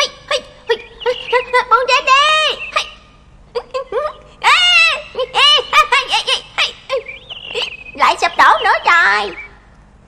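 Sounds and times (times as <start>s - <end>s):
boys giggling: 0.4s - 8.0s.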